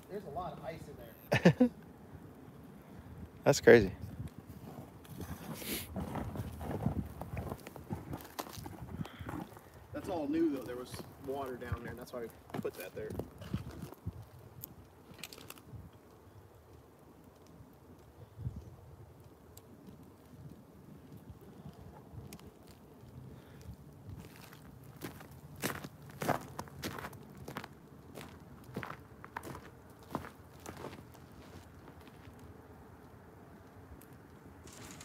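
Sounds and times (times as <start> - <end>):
wood fire crackling: 0.0 - 35.0
sharp pops of fire: 34.6 - 35.0.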